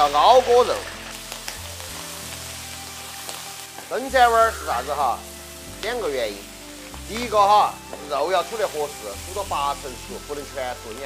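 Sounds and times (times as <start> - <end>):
pork sizzling in a wok: 0.0 - 11.0.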